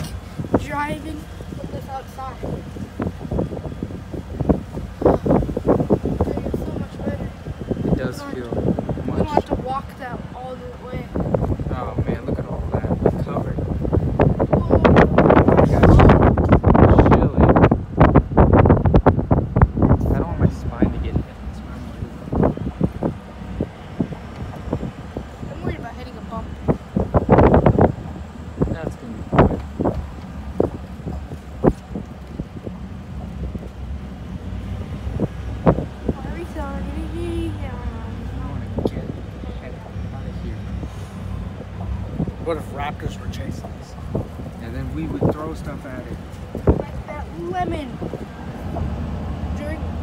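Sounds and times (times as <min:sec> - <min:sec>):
pickup truck rumble: 0:00.0 - 0:50.0
wind buffeting microphone: 0:00.0 - 0:50.0.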